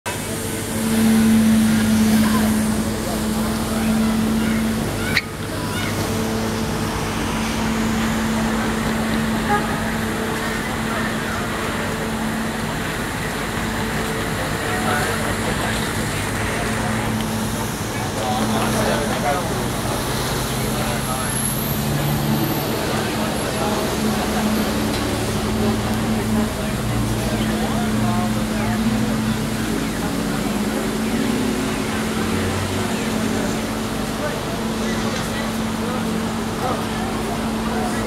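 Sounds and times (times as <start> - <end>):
traffic noise: 0.0 - 38.0
low machine hum: 0.1 - 38.0.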